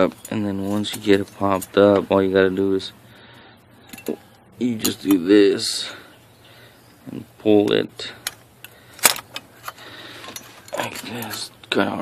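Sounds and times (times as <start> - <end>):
metal exhaust clamp clinking: 3.8 - 5.3.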